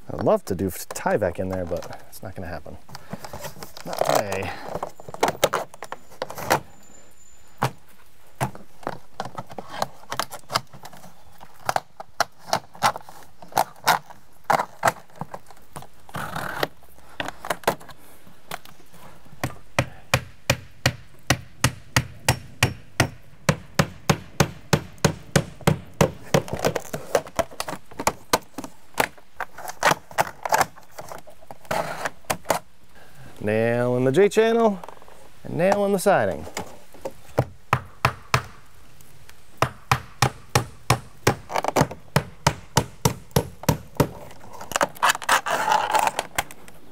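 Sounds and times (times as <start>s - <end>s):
hammer driving nails into siding: 19.8s - 26.9s, 39.6s - 44.2s.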